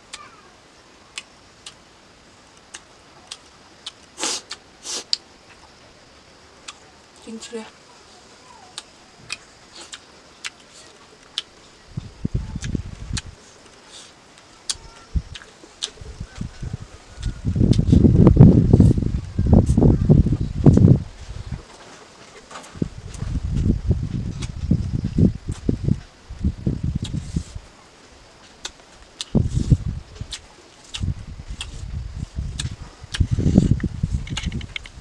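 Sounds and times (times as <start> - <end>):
sharp mouth clicks: 2.7 - 5.2, 8.8 - 10.6, 30.3 - 31.8, 32.5 - 34.8
chewing: 8.7 - 11.5, 12.6 - 16.4, 30.2 - 31.8
wind gusts on microphone: 11.8 - 13.4, 14.8 - 21.7, 22.7 - 27.8, 29.1 - 35.0.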